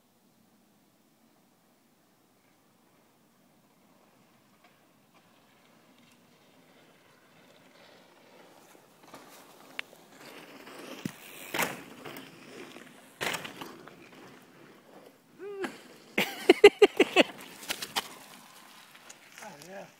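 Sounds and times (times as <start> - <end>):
bike tyres on loose dirt: 2.3 - 19.9.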